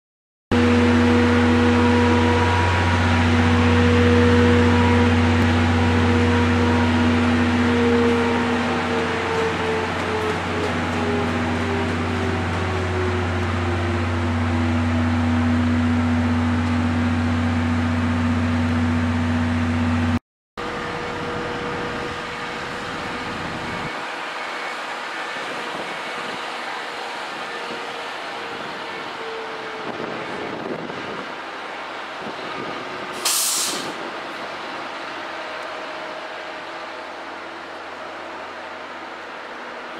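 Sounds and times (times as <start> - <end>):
electric train electrical hum: 0.6 - 33.3.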